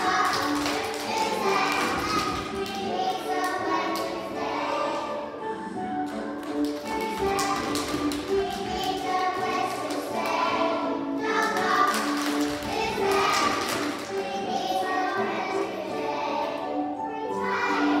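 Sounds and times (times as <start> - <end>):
hand claps: 0.0 - 4.2, 6.0 - 10.4, 11.4 - 14.2
children singing: 0.0 - 5.6, 6.8 - 18.0
musical accompaniment: 0.0 - 18.0.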